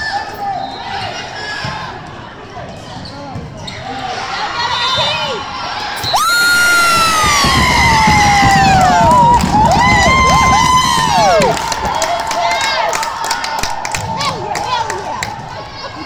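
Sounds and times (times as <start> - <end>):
crowd chatter: 0.0 - 16.0
crowd cheering: 4.4 - 16.0
people shouting: 4.6 - 12.9
long high scream: 6.1 - 11.7.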